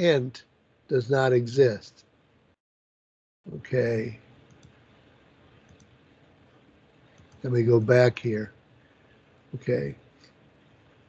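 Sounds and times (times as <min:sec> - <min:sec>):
low room noise: 0:00.0 - 0:02.6, 0:03.5 - 0:11.0.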